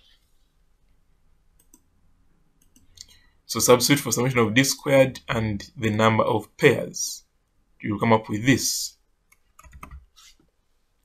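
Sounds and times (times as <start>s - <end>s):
computer mouse clicks: 1.6s - 1.9s, 2.6s - 3.2s.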